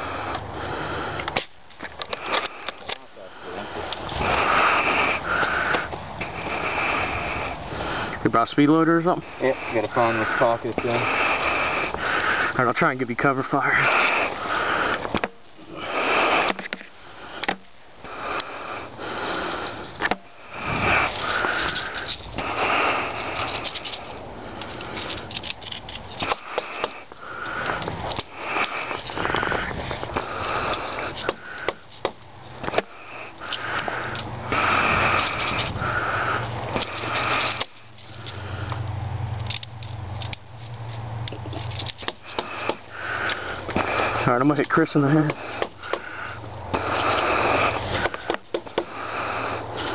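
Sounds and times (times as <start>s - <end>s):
person breathing and sniffing: 0.0s - 8.2s, 8.9s - 38.9s, 41.5s - 49.9s
rustles of movement: 0.0s - 49.9s.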